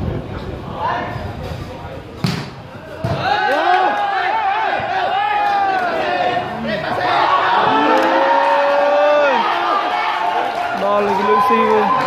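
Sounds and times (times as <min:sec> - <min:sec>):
volleyball smack: 0:02.2 - 0:03.3
crowd shouting: 0:02.8 - 0:12.0.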